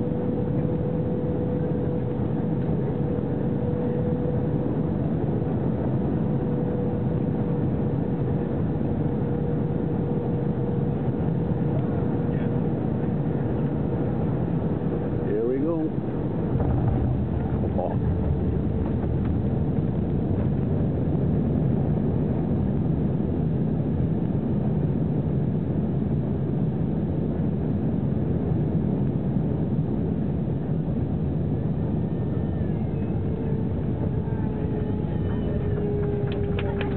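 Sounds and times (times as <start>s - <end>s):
thin steady whine: 0.0s - 25.1s, 29.3s - 36.9s
jet airliner cabin rumble: 0.0s - 36.9s.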